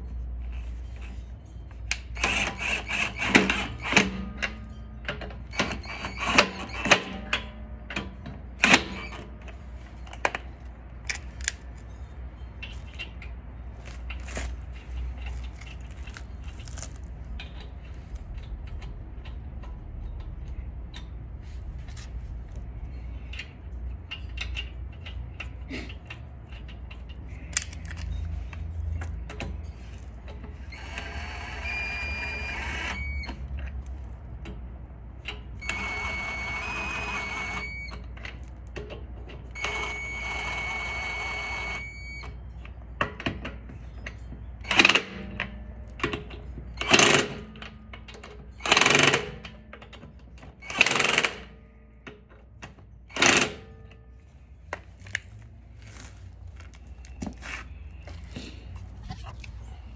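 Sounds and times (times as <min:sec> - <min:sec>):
impact wrench whining: 0:02.2 - 0:04.4, 0:30.6 - 0:33.4, 0:35.6 - 0:37.9, 0:39.6 - 0:42.2, 0:46.8 - 0:47.6, 0:48.6 - 0:49.4, 0:50.6 - 0:51.6, 0:53.1 - 0:53.8.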